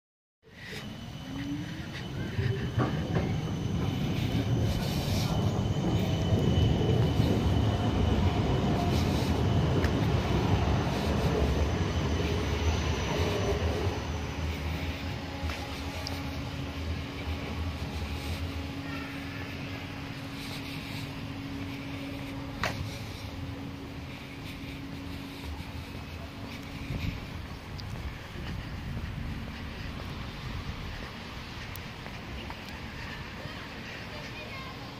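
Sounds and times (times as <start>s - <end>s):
thin high whine: 0.4s - 31.8s
wheels rumbling on tram track: 0.4s - 34.9s.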